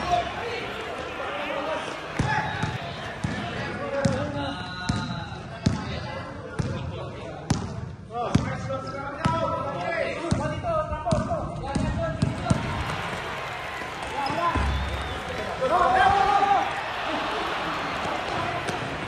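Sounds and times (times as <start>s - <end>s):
players calling out: 12.2s - 19.0s.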